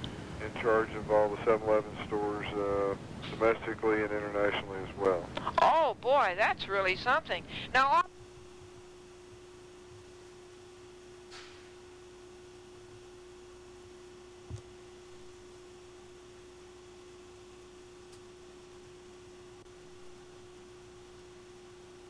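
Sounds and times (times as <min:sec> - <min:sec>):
low hiss: 0:00.0 - 0:22.0.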